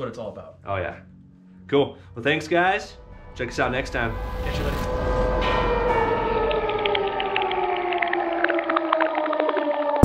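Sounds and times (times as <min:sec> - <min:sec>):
synth tone gliding downward: 0:02.5 - 0:10.0.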